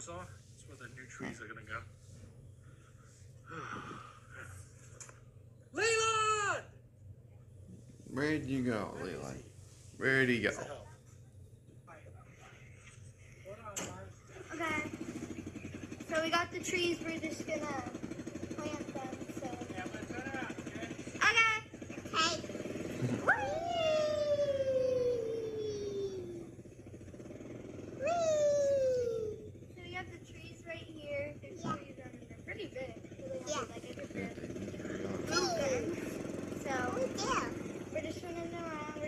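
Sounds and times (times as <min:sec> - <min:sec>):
vehicle engine running: 0:14.0 - 0:39.0
girls' high voices: 0:23.2 - 0:26.5, 0:35.2 - 0:39.0.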